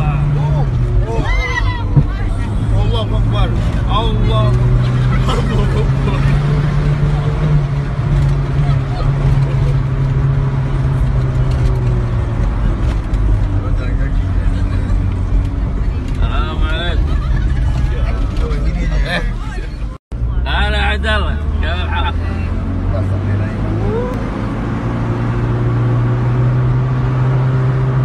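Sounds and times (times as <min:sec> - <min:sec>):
van engine droning: 0:00.0 - 0:28.0.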